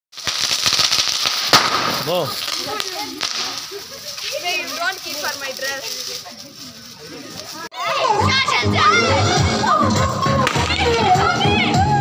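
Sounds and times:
loud crack: 0:00.1 - 0:03.9
sparklers fizzing and crackling: 0:00.1 - 0:07.7.

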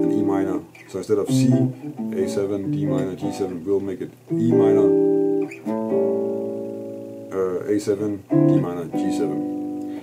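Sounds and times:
electric guitar chords: 0:00.0 - 0:10.0.

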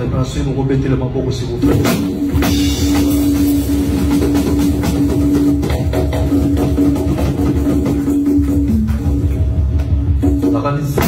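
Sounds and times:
live band music: 0:00.0 - 0:11.0
drums and percussion: 0:01.6 - 0:11.0.

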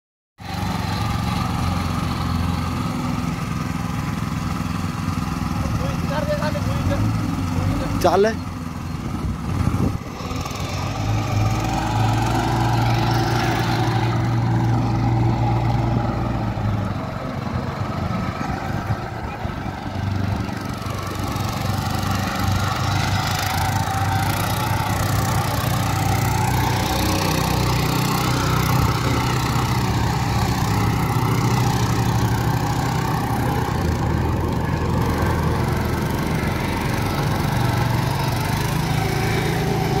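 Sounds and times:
small tractor engine running: 0:00.4 - 0:40.0.

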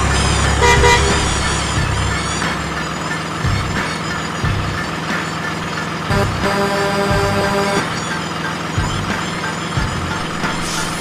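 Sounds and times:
truck horn toot: 0:00.0 - 0:02.4, 0:06.1 - 0:08.0
truck engine rumble: 0:00.0 - 0:11.0.

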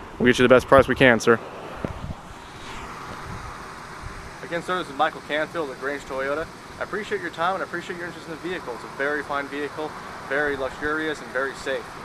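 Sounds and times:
road traffic: 0:00.0 - 0:12.0
wind on microphone: 0:01.7 - 0:04.4.

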